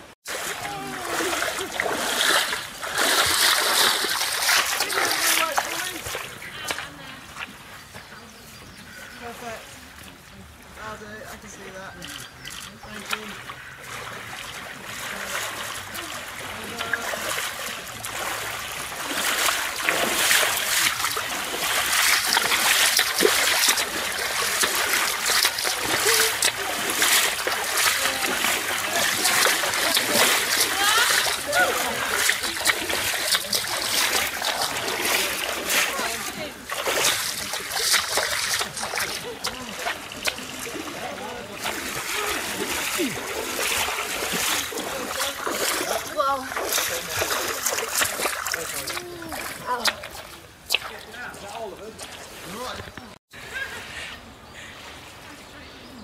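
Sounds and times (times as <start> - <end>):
running water: 0.0 - 56.0
voices: 0.0 - 56.0
wading through stream splashing: 0.0 - 56.0.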